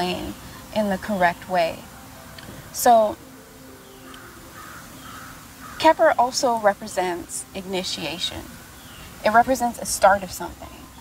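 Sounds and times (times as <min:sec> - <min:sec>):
faint harsh bird calls: 0:03.6 - 0:06.2.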